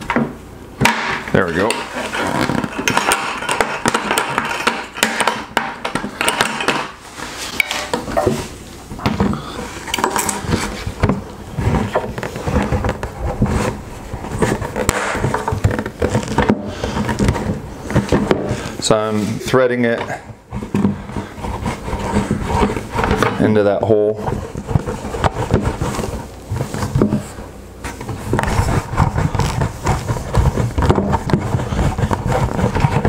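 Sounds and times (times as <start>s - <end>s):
knocks and scrapes in plastic bucket: 0.0s - 33.0s.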